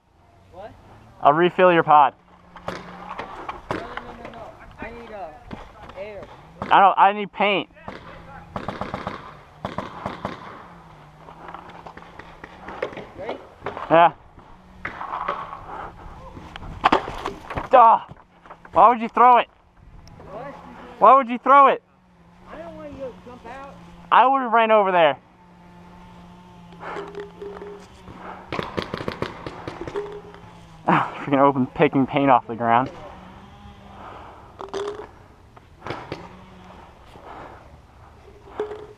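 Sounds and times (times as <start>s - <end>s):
paintball markers firing: 2.5s - 4.4s, 7.8s - 10.7s, 11.5s - 14.0s, 26.8s - 30.5s, 35.8s - 36.3s.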